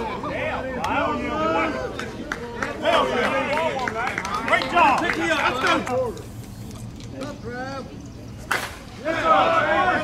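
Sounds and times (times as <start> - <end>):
voices calling out: 0.0 - 10.0
bat cracking against ball: 8.5 - 8.9.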